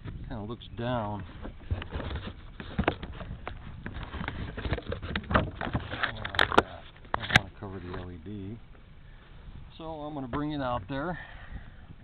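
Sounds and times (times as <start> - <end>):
fingers rubbing and tapping camera: 1.4 - 8.0.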